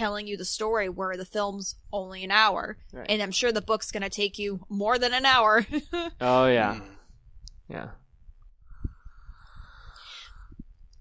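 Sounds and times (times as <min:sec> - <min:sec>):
person saying yeah: 0:06.2 - 0:06.9.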